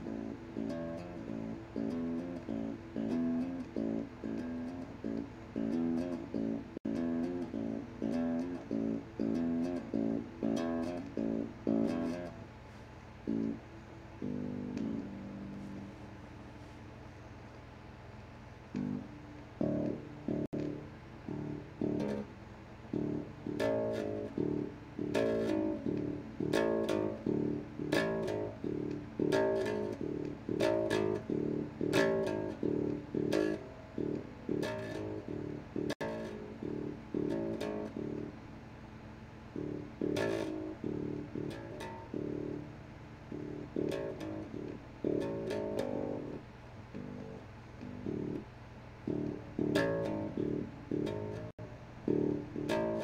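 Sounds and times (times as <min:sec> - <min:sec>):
plucked electric bass notes: 0:00.0 - 0:12.4, 0:13.3 - 0:13.6, 0:14.2 - 0:15.9, 0:18.8 - 0:22.3, 0:22.9 - 0:38.5, 0:39.5 - 0:53.0
steady low hum: 0:00.0 - 0:53.0.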